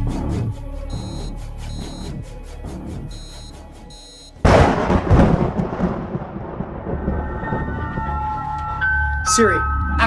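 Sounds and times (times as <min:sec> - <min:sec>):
short electronic beep: 0:00.9 - 0:02.2, 0:03.1 - 0:04.4
loud rumbling boom: 0:04.4 - 0:08.4.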